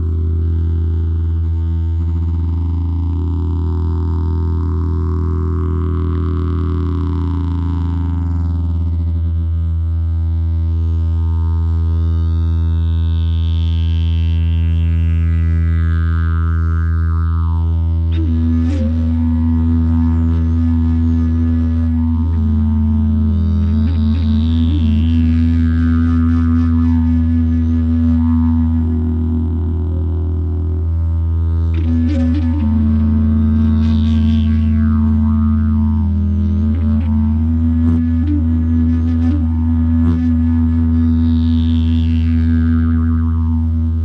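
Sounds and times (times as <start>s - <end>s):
didgeridoo low drone: 0.0s - 44.0s.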